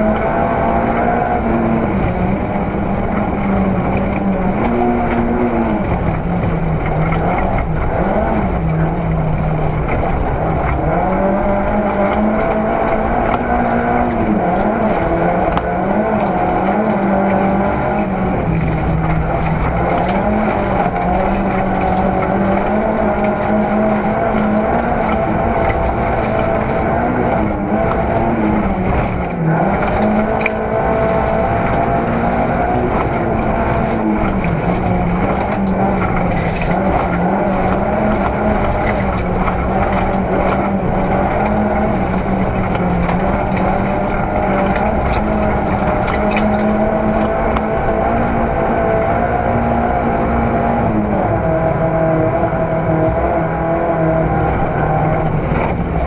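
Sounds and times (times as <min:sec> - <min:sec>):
rally car engine at high revs: 0:00.0 - 0:56.0
tyres on gravel road noise: 0:00.0 - 0:56.0.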